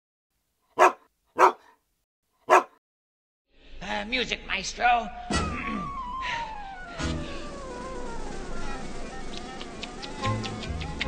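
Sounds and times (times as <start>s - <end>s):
dog barking: 0.8s - 1.8s, 2.5s - 2.8s.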